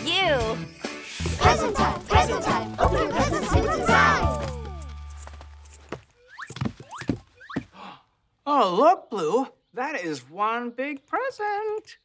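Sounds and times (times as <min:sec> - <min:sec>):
song music: 0:00.0 - 0:05.2.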